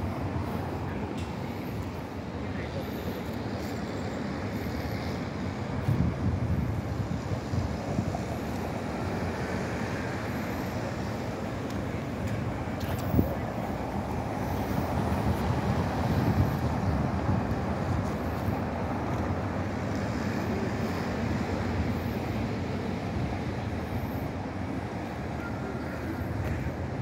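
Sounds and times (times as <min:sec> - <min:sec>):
road traffic rumble: 0:00.0 - 0:27.0.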